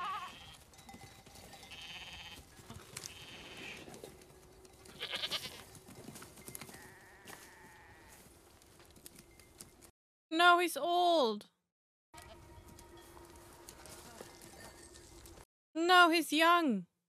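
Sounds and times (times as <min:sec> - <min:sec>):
goats bleating: 0:00.0 - 0:00.6, 0:01.7 - 0:03.9, 0:04.9 - 0:05.7, 0:06.7 - 0:08.2.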